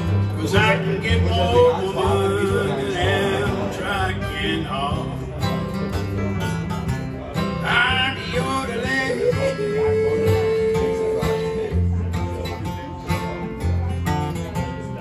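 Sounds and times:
acoustic guitars strumming: 0.0s - 15.0s
picked bass line: 0.0s - 15.0s
wordless vocal yodel: 0.3s - 5.4s, 7.6s - 11.9s.

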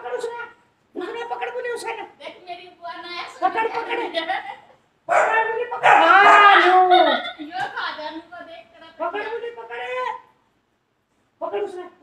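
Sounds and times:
puppy barking: 5.1s - 6.8s.

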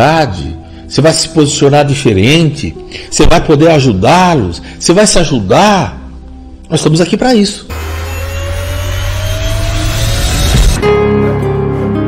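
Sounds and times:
rising whoosh: 7.7s - 11.0s.

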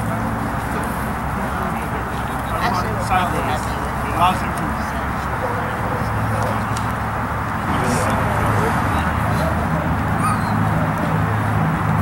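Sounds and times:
dog whining: 10.2s - 10.7s.

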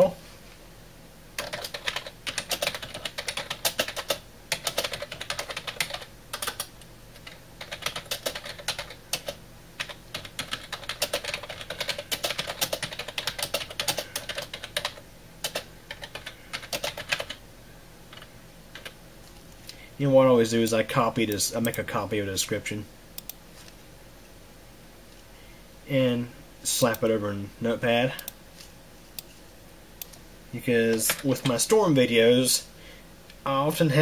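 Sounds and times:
typing on a computer keyboard: 1.4s - 17.4s, 18.1s - 19.0s.

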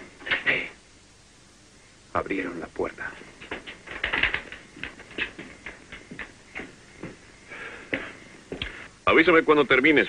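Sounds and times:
footsteps on wooden floorboards: 3.4s - 7.3s, 7.9s - 8.8s.

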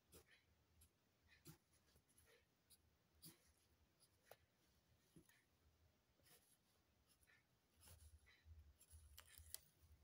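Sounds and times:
pencil scratching on paper: 0.0s - 10.0s.

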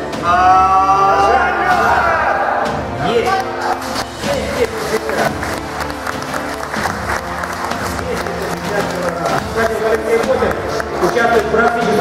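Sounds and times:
background music: 0.0s - 12.0s
audience applauding: 3.3s - 12.0s.

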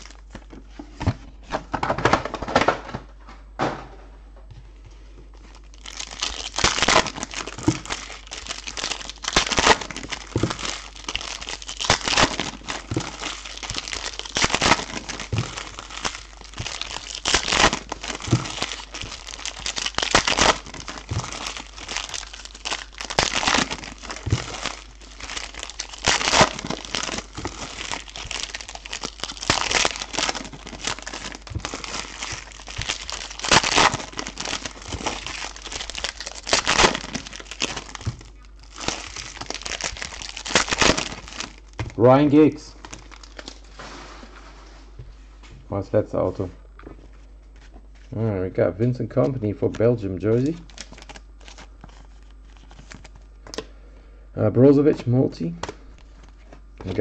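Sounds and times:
foil wrappers crinkling and ripping: 0.0s - 0.8s, 5.4s - 44.1s, 49.2s - 53.7s, 55.8s - 57.0s.

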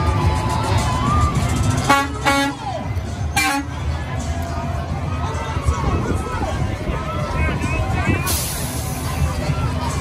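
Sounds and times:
crowd noise: 0.0s - 10.0s
music: 0.0s - 10.0s
truck air horn blasts: 1.8s - 2.6s, 3.4s - 3.7s.

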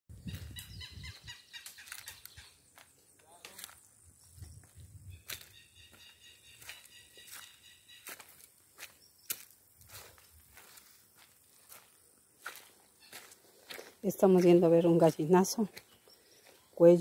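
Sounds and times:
footsteps on stony dirt path: 0.2s - 17.0s.

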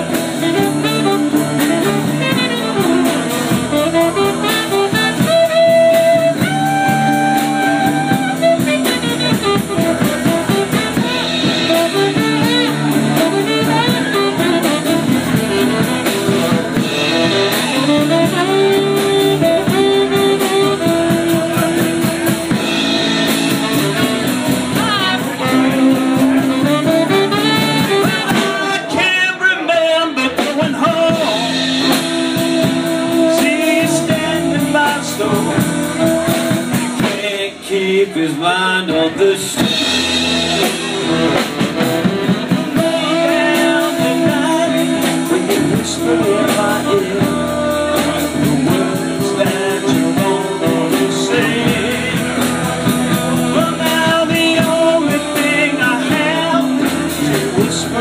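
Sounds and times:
saxophone: 0.0s - 37.7s, 39.2s - 58.0s
rock and roll band playing: 0.0s - 58.0s.

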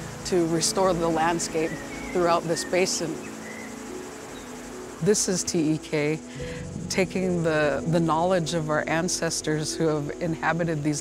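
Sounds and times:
insects chirring: 0.0s - 11.0s
soft background music tones: 0.0s - 11.0s.

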